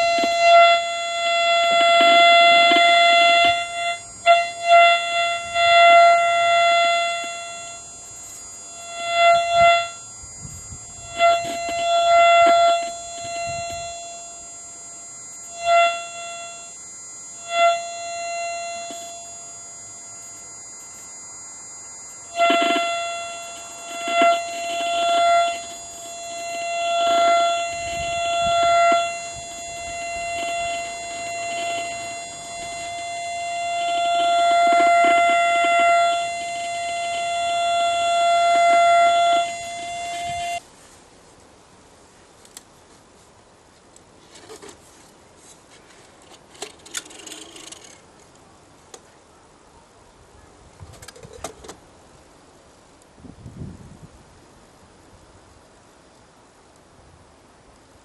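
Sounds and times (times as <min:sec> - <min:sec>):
steady radio signal tone: 0:00.0 - 0:40.6.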